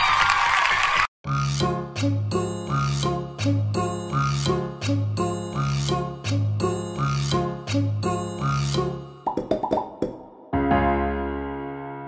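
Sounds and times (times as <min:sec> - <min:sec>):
bouncy cartoon music: 0:01.2 - 0:11.0
rising cartoon plop effects: 0:09.3 - 0:10.5.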